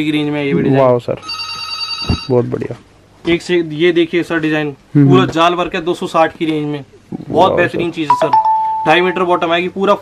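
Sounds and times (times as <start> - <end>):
high electronic ringing tone: 1.2 - 2.4, 8.1 - 9.6
person speaking: 4.9 - 6.1, 6.8 - 10.0.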